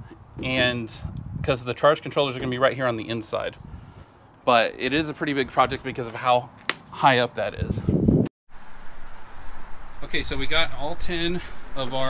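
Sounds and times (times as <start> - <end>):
wind rumbling on microphone: 0.0 - 1.9, 3.4 - 4.1, 7.4 - 12.0
outdoor background hiss: 0.0 - 7.8, 8.5 - 12.0.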